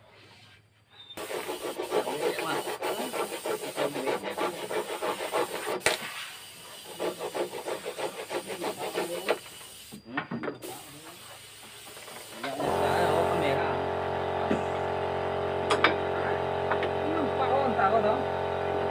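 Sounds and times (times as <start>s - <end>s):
hand saw cutting wood: 1.2s - 6.0s, 6.8s - 9.4s.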